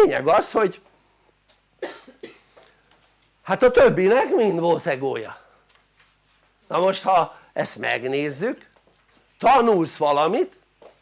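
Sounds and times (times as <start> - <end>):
person coughing: 1.8 - 2.7.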